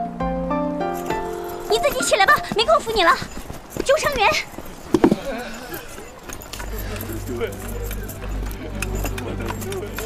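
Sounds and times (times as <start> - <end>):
high clicks and jingles: 0.9 - 10.0
indistinct voices: 1.1 - 10.0.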